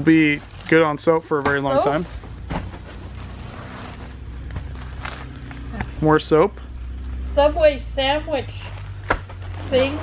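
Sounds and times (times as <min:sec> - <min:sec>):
plastic packages and paper bags rustling: 0:00.0 - 0:06.2, 0:08.5 - 0:10.0
steady low hum: 0:00.0 - 0:10.0.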